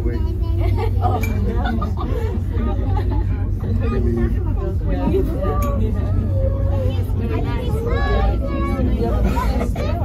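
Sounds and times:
cable car low rumble: 0.0s - 10.0s
people chatting: 0.0s - 10.0s.

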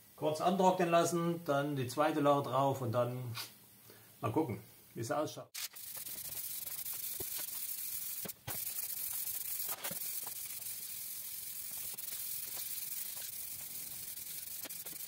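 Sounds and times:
aerosol spray can hissing: 5.6s - 15.0s.

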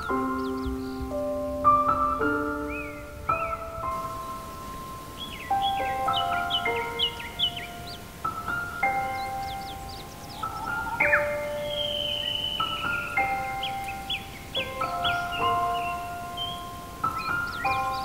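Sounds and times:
solo piano high notes: 0.0s - 18.0s
songbirds chirping: 0.0s - 18.0s.

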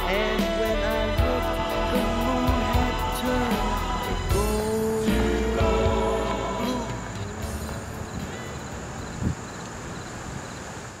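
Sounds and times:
insect drone: 4.6s - 11.0s.

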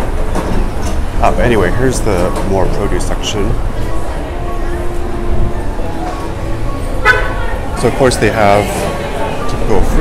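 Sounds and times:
faint crowd noise: 0.0s - 10.0s.

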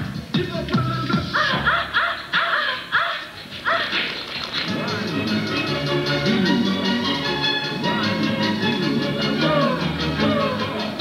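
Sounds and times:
dog barking: 1.4s - 4.1s
quiet music: 3.9s - 11.0s.

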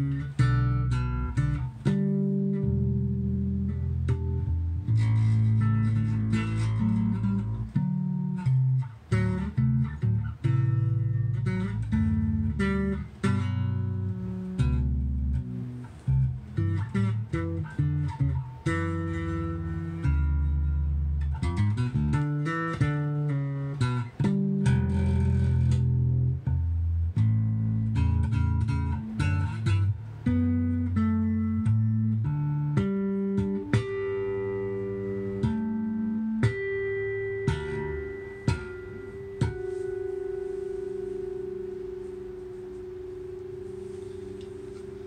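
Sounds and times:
electric bass plucked notes: 0.0s - 45.0s.

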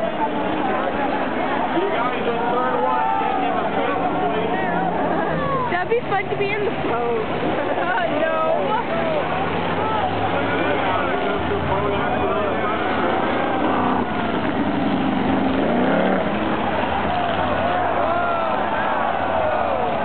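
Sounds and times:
crowd voices: 0.0s - 20.0s
race car engines: 0.0s - 20.0s.

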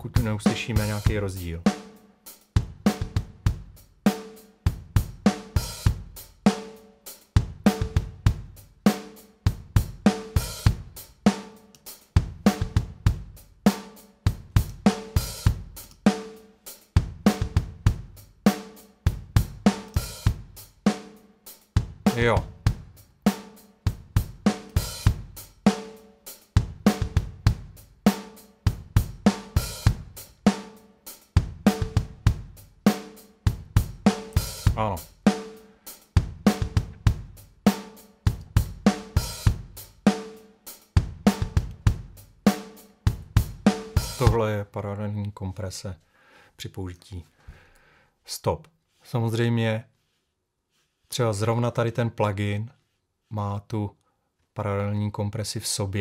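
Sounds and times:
drum kit groove: 0.0s - 44.6s.

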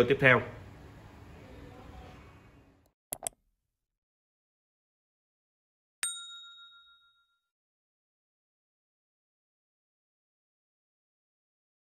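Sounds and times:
notification bell ding: 6.0s - 7.5s.

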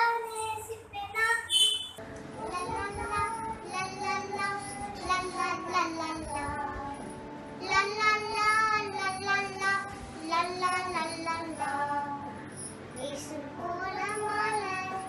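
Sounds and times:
girl singing: 0.0s - 12.4s, 13.0s - 15.0s.

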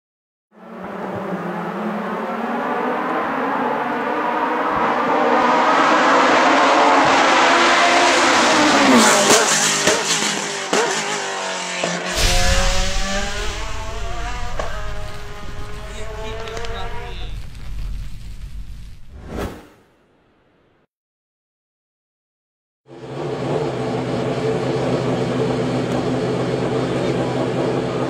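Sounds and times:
race car engine approaching: 0.6s - 17.4s, 22.9s - 28.0s
deep rumble: 12.2s - 19.3s
engine pops and crackles: 12.3s - 18.0s.

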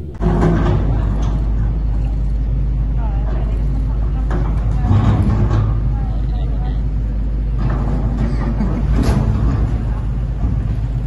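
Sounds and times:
excavator diesel engine rumbling: 0.0s - 11.0s.

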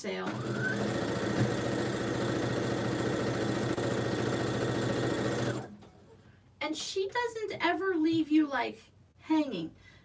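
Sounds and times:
electric sewing machine stitching: 0.2s - 5.8s.

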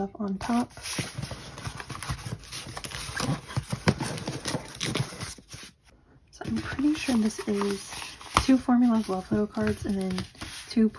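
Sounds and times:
paper rustling: 0.4s - 10.9s.

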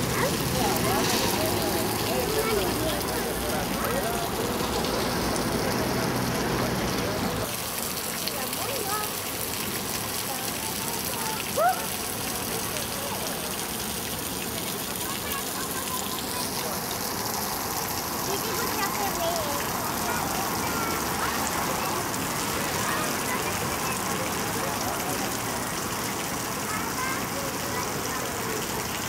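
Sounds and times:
fountain water splashing: 0.0s - 29.0s.

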